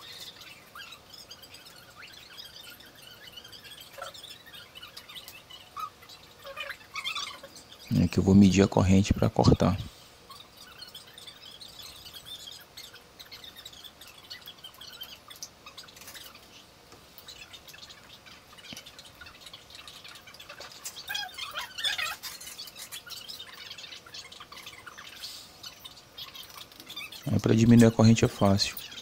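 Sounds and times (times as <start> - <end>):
birds chirping: 0.0 - 29.0.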